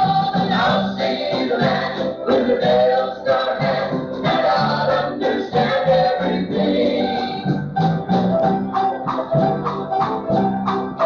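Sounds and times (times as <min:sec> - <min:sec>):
gospel group singing in harmony: 0:00.0 - 0:07.8.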